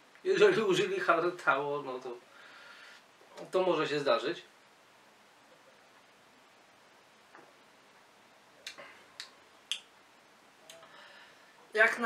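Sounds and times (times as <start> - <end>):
mouth clicks and lip smacks: 8.6 - 10.0.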